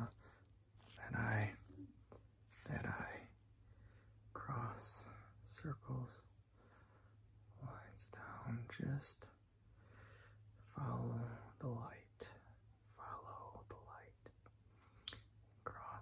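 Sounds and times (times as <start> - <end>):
man whispering: 0.0 - 0.2, 0.8 - 3.4, 4.2 - 6.4, 7.4 - 9.4, 10.6 - 14.5, 15.6 - 16.0.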